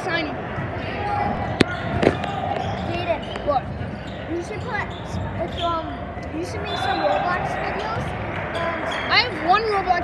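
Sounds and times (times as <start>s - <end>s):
crowd chatter in gym: 0.0s - 10.0s.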